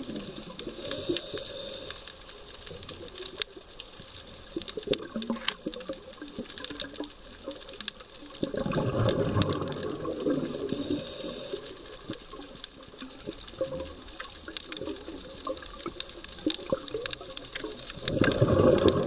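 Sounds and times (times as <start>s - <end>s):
gurgling bubbles underwater: 0.0s - 1.9s, 2.6s - 19.0s
sharp clicks underwater: 0.0s - 19.0s.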